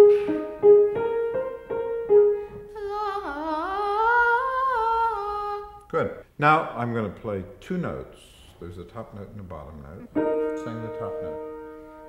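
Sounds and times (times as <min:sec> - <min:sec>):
piano notes: 0:00.0 - 0:04.3, 0:10.0 - 0:12.0
boy singing: 0:02.7 - 0:05.9.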